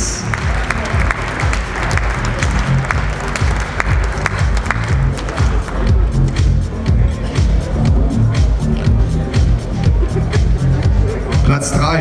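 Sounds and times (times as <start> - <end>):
audience applauding: 0.0 - 6.0
electronic dance music: 0.0 - 12.0.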